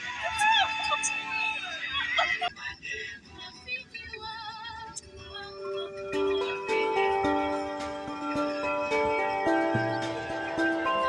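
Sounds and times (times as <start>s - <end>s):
music with singing voice: 0.0s - 11.0s.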